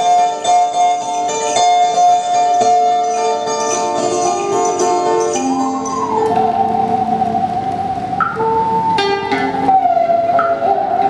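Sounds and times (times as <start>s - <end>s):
monochord sliding melody: 0.0s - 11.0s
plucked string notes: 0.0s - 11.0s.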